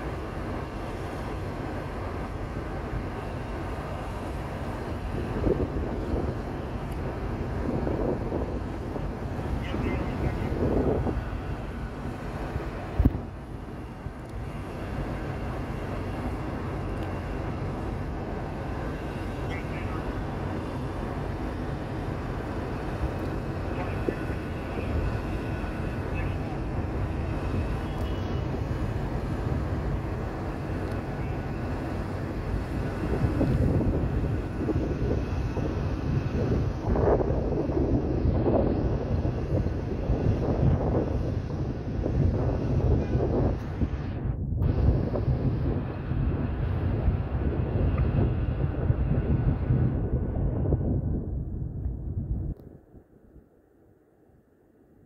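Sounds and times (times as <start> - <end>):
distant traffic rumble: 0.0 - 55.0
faint voices: 23.6 - 27.0.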